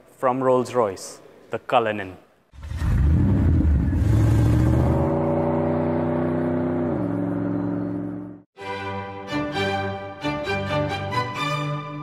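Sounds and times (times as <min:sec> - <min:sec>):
car engine revving: 0:02.6 - 0:08.4.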